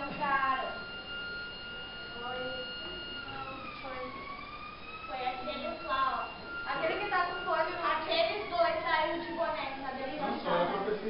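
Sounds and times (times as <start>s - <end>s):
high-pitched whine: 0.0s - 11.0s.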